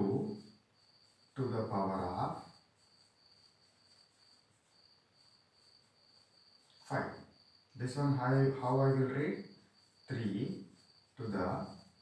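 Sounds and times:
insect chirring: 0.0s - 12.0s.

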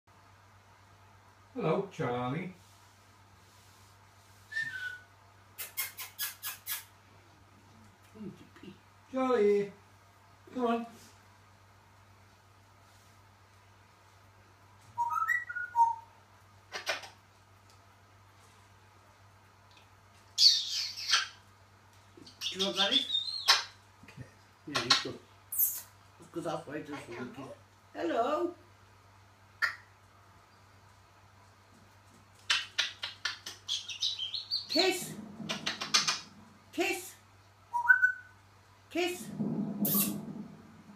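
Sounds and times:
parrot whistle: 15.0s - 16.1s, 37.7s - 38.4s
parrot clicking and smacking: 32.1s - 33.9s, 35.4s - 36.4s.

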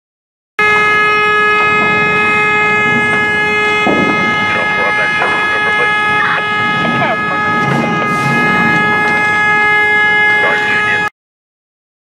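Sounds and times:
rumbling noise: 0.6s - 11.0s
loud steady drone: 0.6s - 11.1s.

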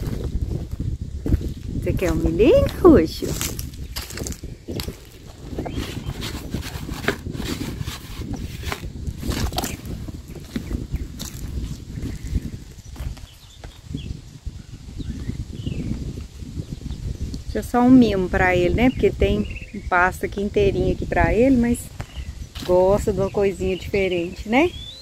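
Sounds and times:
wind rumbling on microphone: 0.0s - 25.0s
horse crunching corn: 2.1s - 12.2s.

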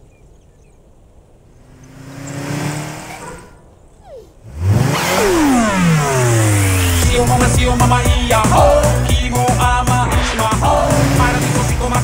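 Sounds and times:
speeding car passing by: 1.5s - 3.7s, 4.4s - 12.0s
cartoon car engine: 1.7s - 12.0s.

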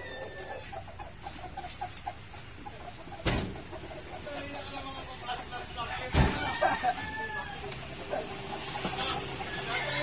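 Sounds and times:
rooster crowing: 0.0s - 0.6s, 6.2s - 7.8s, 9.0s - 10.0s.

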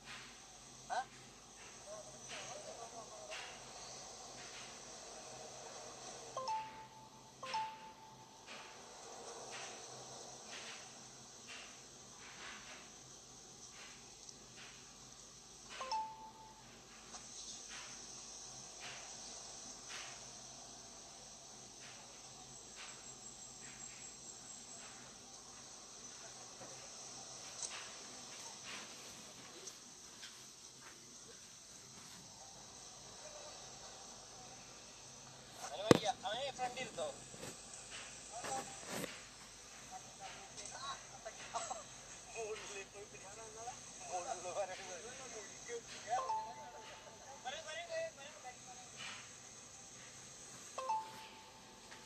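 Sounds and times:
insects chirring: 0.0s - 52.0s
person speaking: 35.6s - 37.2s.

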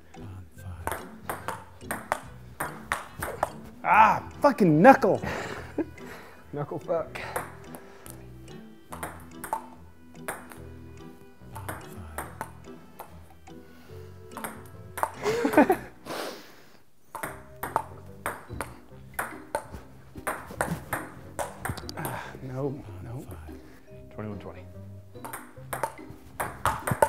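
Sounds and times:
background music: 0.0s - 27.0s
table tennis ball clicking: 0.8s - 3.6s, 8.9s - 10.7s, 11.5s - 13.2s, 14.3s - 15.2s, 17.1s - 22.2s, 25.2s - 27.0s
person shouting: 3.8s - 5.1s.

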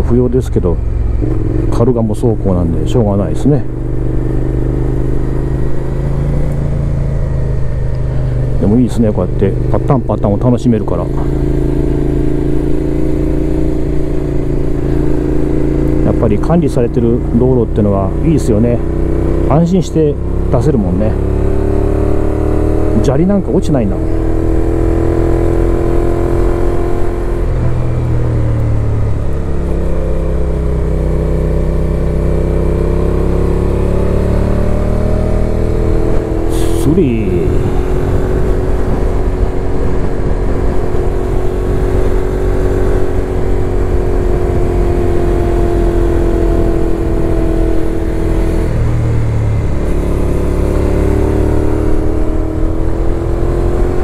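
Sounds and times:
motorcycle engine cruising: 0.0s - 54.0s
wind rush on microphone: 37.3s - 45.4s.

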